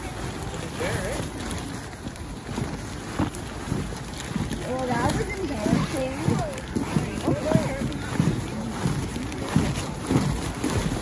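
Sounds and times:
wind rumble on microphone: 0:00.0 - 0:11.0
children chattering and calling out: 0:04.6 - 0:08.9.

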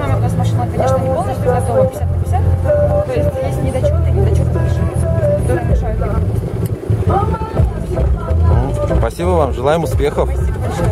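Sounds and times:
woman talking: 0:00.0 - 0:06.3
car engine rumbling: 0:00.0 - 0:10.9.

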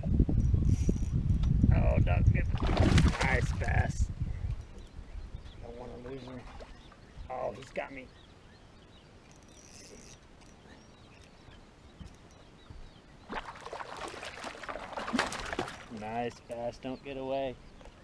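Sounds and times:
fish splashing at water surface: 0:13.3 - 0:16.0.

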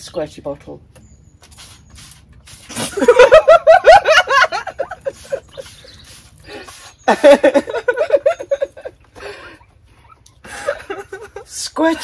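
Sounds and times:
women laughing: 0:02.7 - 0:05.8, 0:07.1 - 0:09.4, 0:10.4 - 0:11.5.

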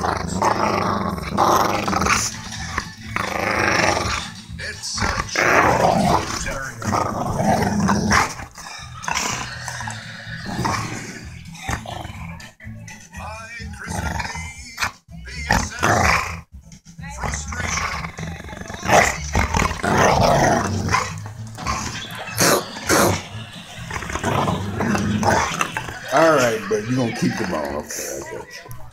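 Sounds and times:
dog growling: 0:00.0 - 0:12.5, 0:13.7 - 0:16.5, 0:17.1 - 0:28.8.

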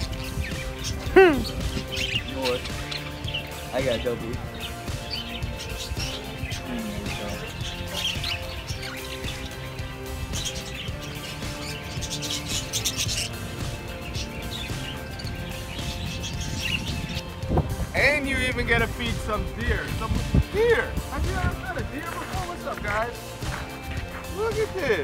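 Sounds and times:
background music: 0:00.0 - 0:25.0
budgerigars chirping: 0:00.0 - 0:25.0.

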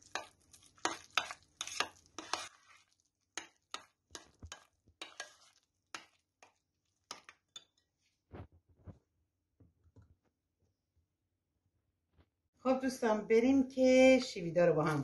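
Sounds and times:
spoon stirring thick sauce: 0:00.0 - 0:08.2.

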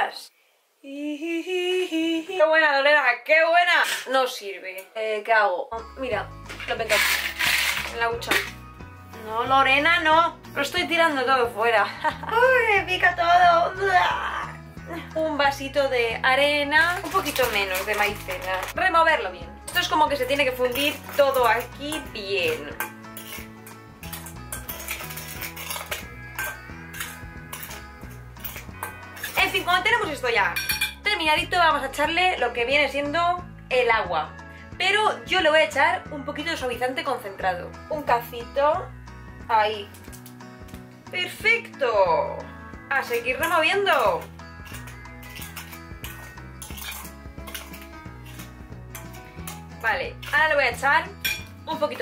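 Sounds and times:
background music with bass: 0:05.8 - 0:52.0
spoon scraping dry mix in bowl: 0:06.5 - 0:08.6, 0:16.7 - 0:18.8, 0:19.7 - 0:31.0, 0:43.0 - 0:52.0
metal clinking on glass: 0:20.7 - 0:29.6, 0:30.6 - 0:31.0, 0:43.4 - 0:50.4, 0:51.2 - 0:51.5.

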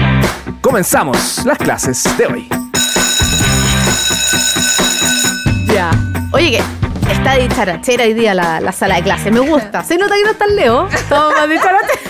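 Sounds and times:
intro music: 0:00.0 - 0:09.8
electric bell ringing: 0:02.7 - 0:06.7
bass line: 0:02.8 - 0:04.4, 0:05.1 - 0:08.1.

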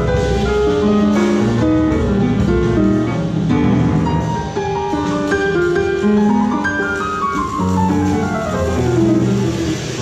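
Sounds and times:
drums: 0:00.0 - 0:10.0
piano playing single notes: 0:00.0 - 0:10.0
plucked double bass: 0:00.0 - 0:10.0.

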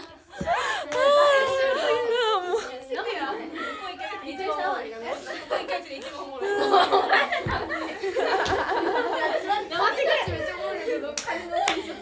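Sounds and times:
women talking and laughing: 0:00.0 - 0:12.0.

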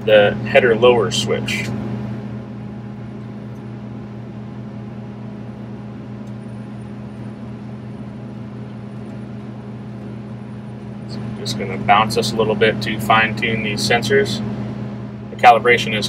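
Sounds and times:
combine engine idling: 0:00.0 - 0:16.0.

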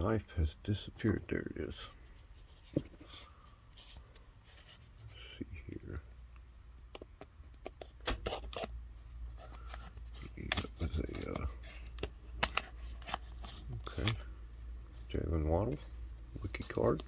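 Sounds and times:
paperboard rustling and scraping: 0:02.2 - 0:05.1.

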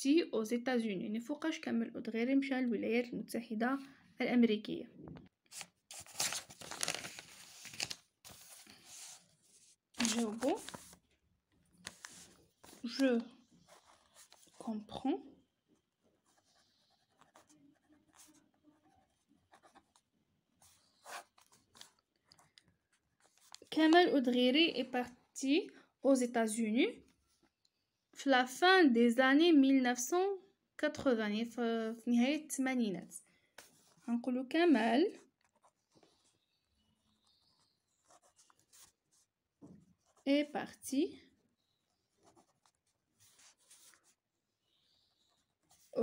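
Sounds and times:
ballpoint pen scratching on paper: 0:11.8 - 0:14.8, 0:16.2 - 0:24.0, 0:35.1 - 0:39.3, 0:39.9 - 0:40.4, 0:41.7 - 0:44.2.

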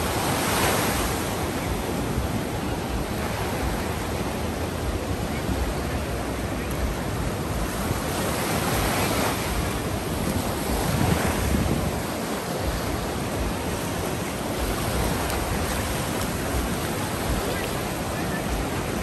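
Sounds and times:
surf washing up beach: 0:00.0 - 0:19.0
wind rumbling on microphone: 0:00.0 - 0:19.0.

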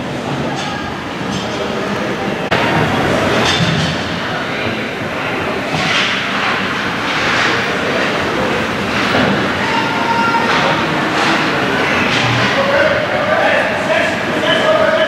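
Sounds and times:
steady rink noise: 0:00.0 - 0:15.0.

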